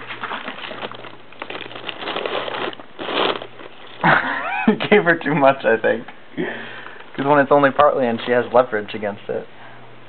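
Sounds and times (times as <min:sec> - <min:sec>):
paper crinkling and tearing: 0:00.0 - 0:04.1.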